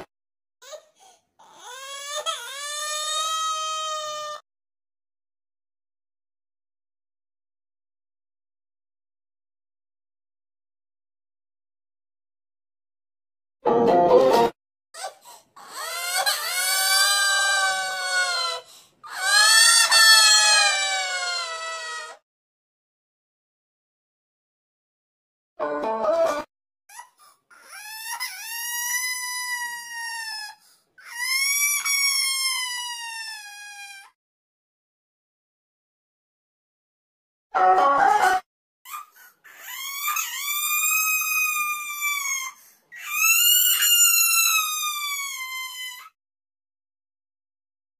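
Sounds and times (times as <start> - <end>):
cartoon crying wails: 1.7 - 4.4, 15.6 - 22.2, 27.7 - 30.5, 31.1 - 34.1, 39.6 - 46.1
pitch-shifted crying wails: 15.6 - 22.1.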